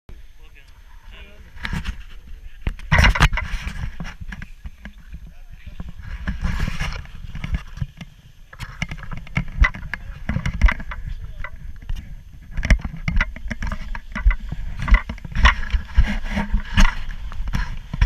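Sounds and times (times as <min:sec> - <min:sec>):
wind rumbling on microphone: 0:00.1 - 0:18.0.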